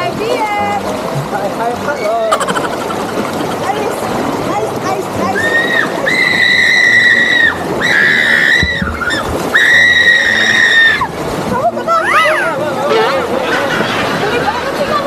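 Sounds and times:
rushing water: 0.0 - 15.0.

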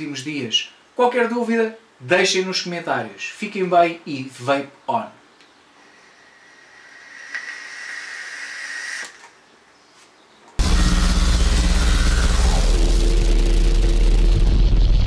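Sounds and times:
e-cigarette airy hiss: 6.1 - 9.3
loud rumbling sound effect: 10.6 - 15.0
tone sliding down: 10.6 - 15.0.

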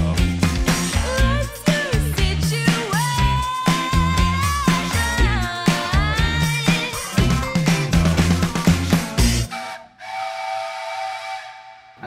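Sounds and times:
breathy whistle blast: 9.3 - 12.0.

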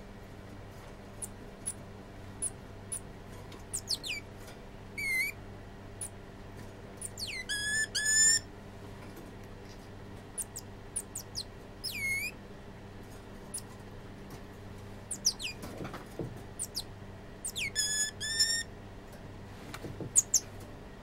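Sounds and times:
steady low hum: 0.0 - 21.0
tamarin high chirps: 3.7 - 4.3, 5.0 - 5.4, 7.0 - 8.4, 10.4 - 12.4, 15.1 - 15.6, 16.6 - 18.7, 20.2 - 20.4.

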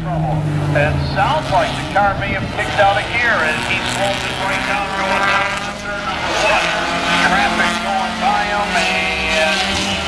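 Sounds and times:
race car engines running: 0.0 - 10.0
voices: 0.0 - 10.0.

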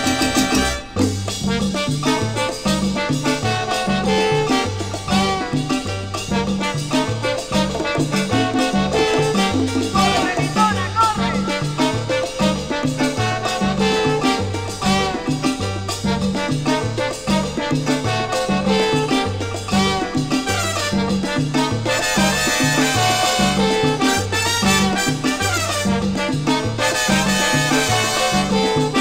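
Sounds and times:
salsa band playing: 0.0 - 29.0.

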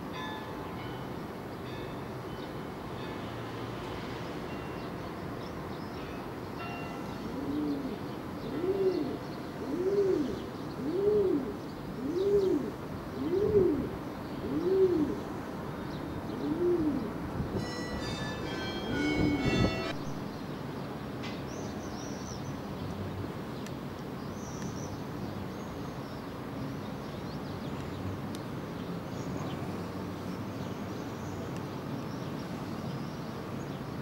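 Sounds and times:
pigeon cooing: 7.4 - 13.9, 14.5 - 15.2, 16.4 - 17.1.

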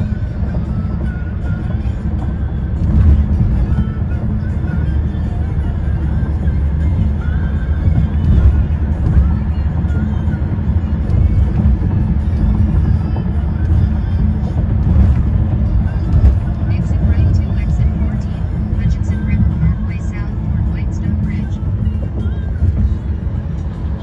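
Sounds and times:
car cabin low rumble: 0.0 - 24.0
music: 0.0 - 24.0.

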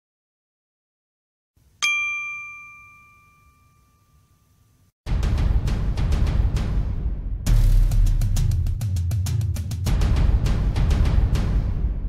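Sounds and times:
bell-like ding chime: 1.8 - 4.8.

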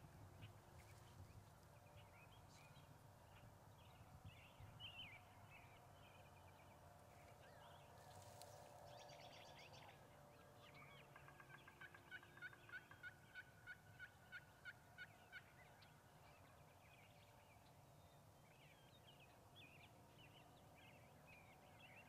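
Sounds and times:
wild turkey yelping: 11.8 - 15.5.

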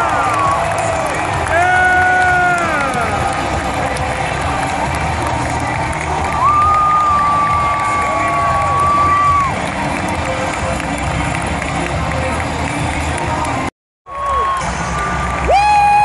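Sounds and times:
arena crowd cheering: 0.0 - 16.0.

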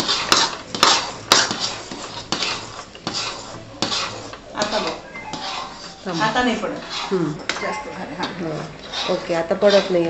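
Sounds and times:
steel ladle scraping pan: 0.0 - 10.0.

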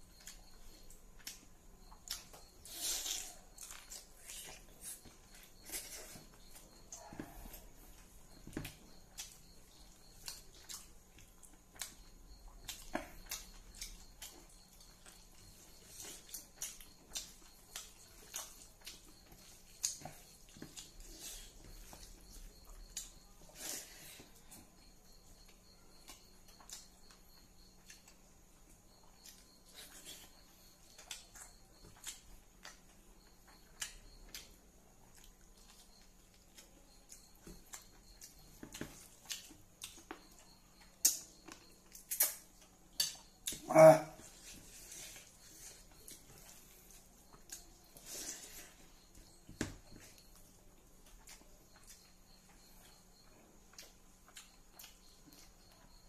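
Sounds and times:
chewing smacks: 1.2 - 23.2, 29.0 - 56.0.

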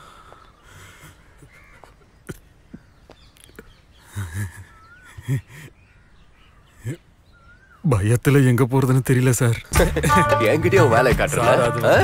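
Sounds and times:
crow cawing faintly: 0.0 - 3.2.

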